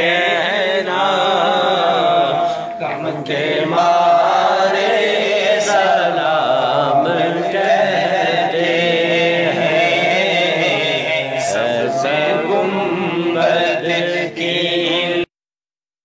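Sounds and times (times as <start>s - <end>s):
men chanting devotional song: 0.0s - 15.3s.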